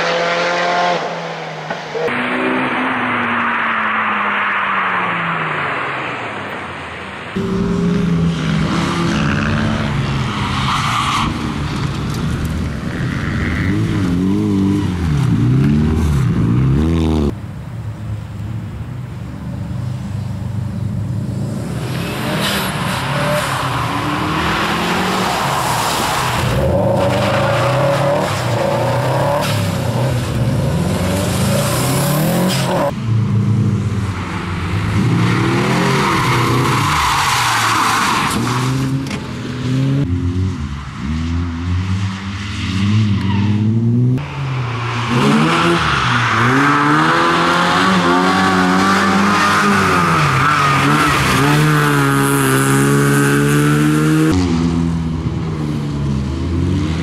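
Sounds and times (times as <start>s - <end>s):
rally car engines revving: 0.0s - 5.9s, 7.3s - 17.4s, 21.0s - 57.0s.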